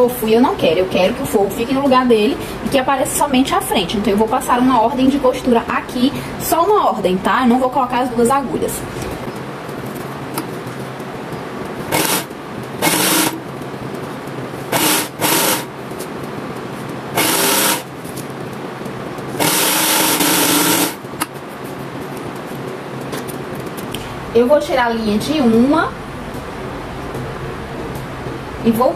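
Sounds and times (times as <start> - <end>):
motor humming: 11.6 - 14.0, 14.6 - 15.8, 16.9 - 21.3
sewing machine stitching: 11.9 - 13.4, 14.7 - 15.7, 17.2 - 17.9, 19.4 - 21.0.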